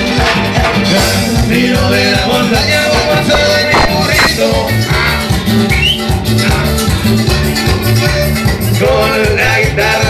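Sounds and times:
electric guitar: 0.0s - 10.0s
live band playing cumbia: 0.0s - 10.0s
pulsing bass line: 1.3s - 10.0s.

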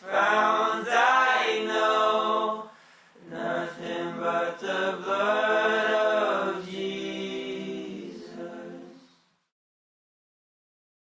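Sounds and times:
choir singing a hymn in harmony: 0.0s - 9.2s.

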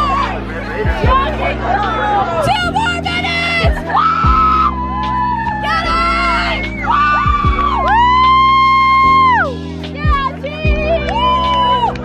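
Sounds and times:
crowd chatter: 0.0s - 4.0s
cheerleaders chanting: 0.0s - 9.2s
music playing: 0.0s - 12.0s.

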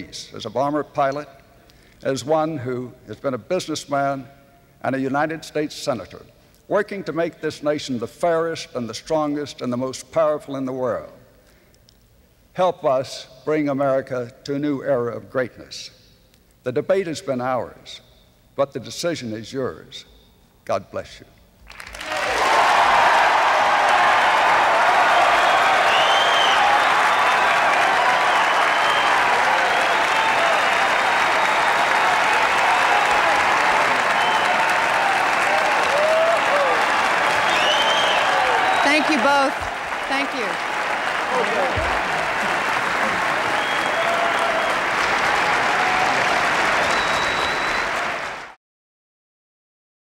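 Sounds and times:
audience applauding: 21.7s - 48.6s
scattered cheers: 22.0s - 48.6s.

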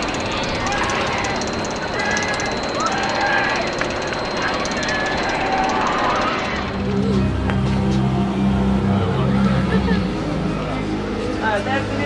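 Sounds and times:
roller coaster rattling on track: 0.0s - 7.0s.

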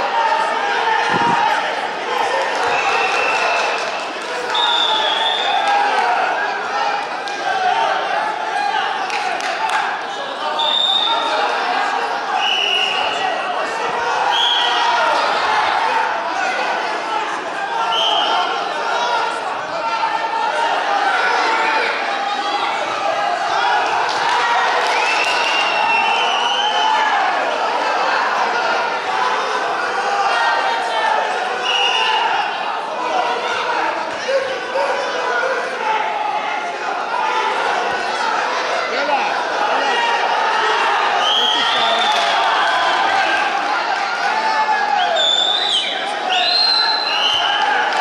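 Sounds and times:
crowd hubbub in a hall: 0.0s - 48.0s.

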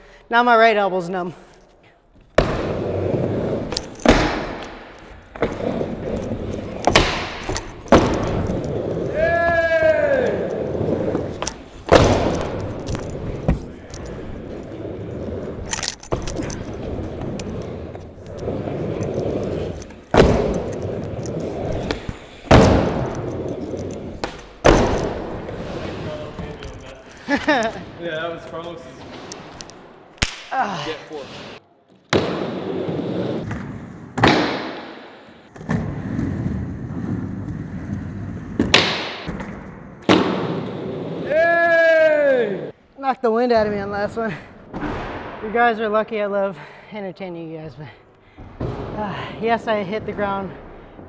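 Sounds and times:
skateboard wheels rolling on wood: 2.1s - 29.8s, 31.2s - 42.7s
skateboard clacks and bangs: 38.6s - 40.8s.

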